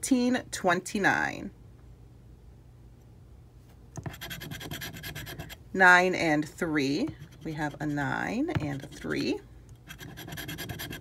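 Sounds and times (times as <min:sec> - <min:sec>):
scratching a scratch-off ticket: 0:04.0 - 0:05.6, 0:07.1 - 0:11.0.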